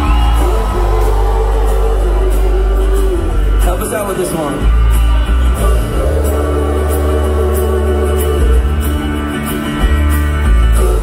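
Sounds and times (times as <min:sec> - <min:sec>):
person singing long notes: 0:00.0 - 0:03.6
live folk-rock band playing: 0:00.0 - 0:11.0.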